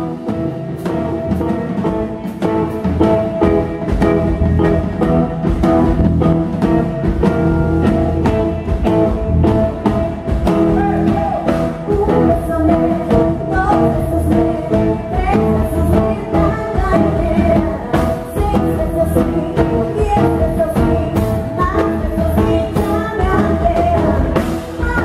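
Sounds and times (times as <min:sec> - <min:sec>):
drum kit beat: 0:00.0 - 0:25.0
electric guitar: 0:00.0 - 0:25.0.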